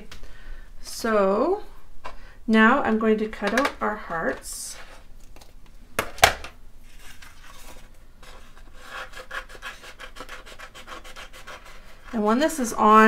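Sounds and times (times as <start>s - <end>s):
paper rustling: 6.9s - 9.2s.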